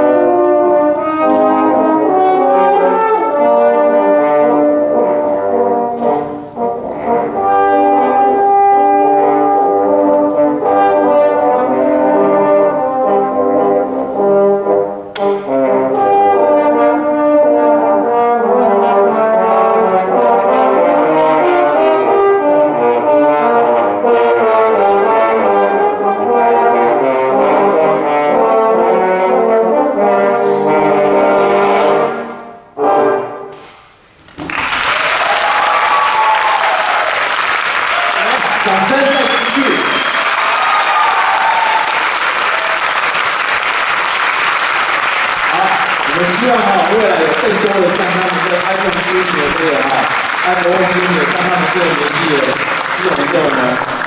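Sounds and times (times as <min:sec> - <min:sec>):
french horns playing: 0:00.0 - 0:33.6
applause: 0:34.4 - 0:54.0.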